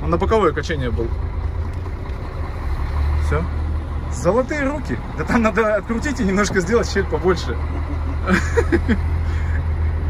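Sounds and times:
diesel truck engine running: 0.0 - 10.0.

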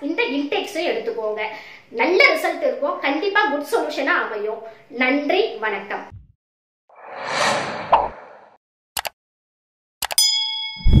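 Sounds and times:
notification bell ding: 10.2 - 11.0.

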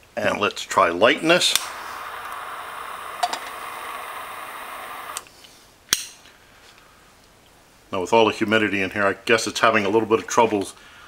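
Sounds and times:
lighter flame hissing: 1.1 - 5.3.

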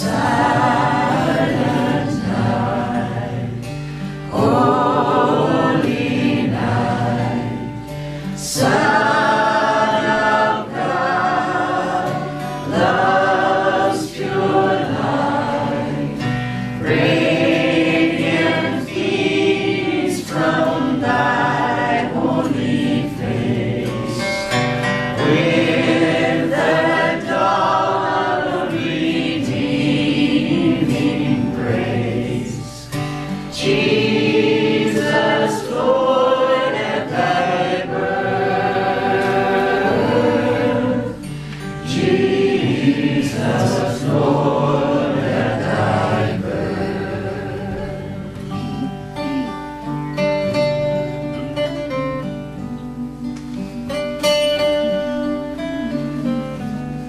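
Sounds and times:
man and woman singing: 0.0 - 49.5
strummed acoustic guitars: 0.0 - 57.0.

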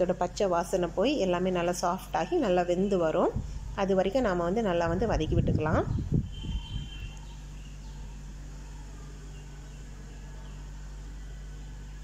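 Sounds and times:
low background hum: 0.0 - 12.0
faint high chirps: 6.3 - 12.0.

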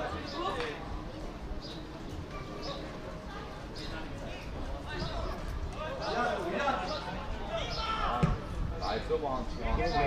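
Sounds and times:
voices talking and calling: 0.0 - 10.0.

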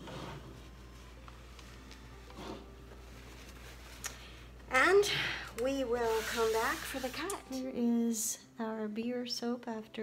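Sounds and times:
paper towel rustling: 0.0 - 4.4, 5.8 - 7.6.

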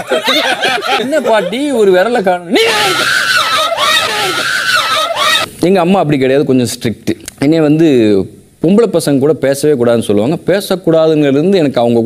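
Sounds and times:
person screaming: 2.5 - 5.5.

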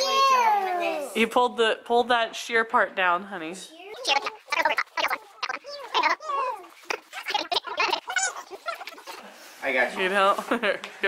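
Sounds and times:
child's wordless vocal sounds: 0.0 - 1.2, 3.7 - 9.3.

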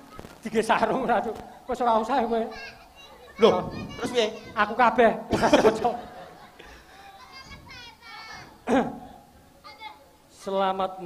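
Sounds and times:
children calling: 0.0 - 10.3
children's voices: 0.0 - 10.5.

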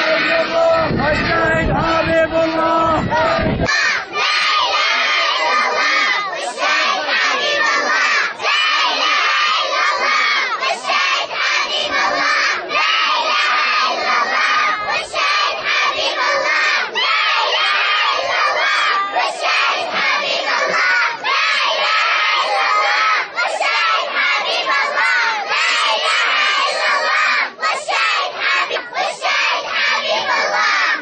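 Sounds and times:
children chanting and singing: 0.0 - 31.0
men chanting: 0.0 - 31.0.

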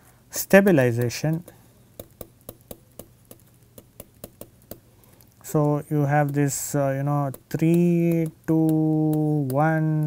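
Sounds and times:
stylus tapping on tablet: 0.8 - 10.0.

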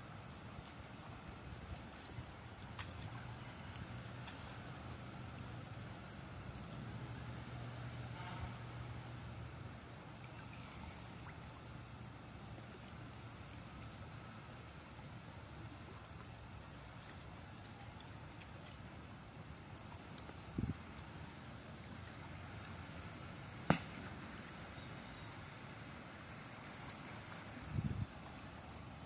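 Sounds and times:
water: 0.0 - 29.0
wind: 0.0 - 29.0.

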